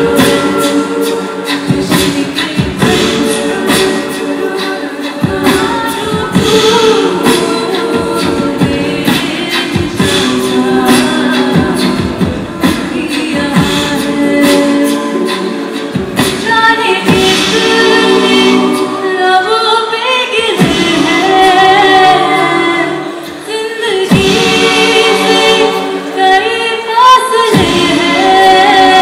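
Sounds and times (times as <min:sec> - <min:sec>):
a cappella women singing: 0:00.0 - 0:29.0.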